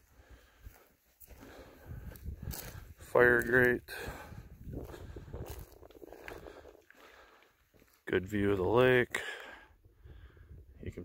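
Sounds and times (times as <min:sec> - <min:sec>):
footsteps on dirt and rock: 0:00.0 - 0:08.7.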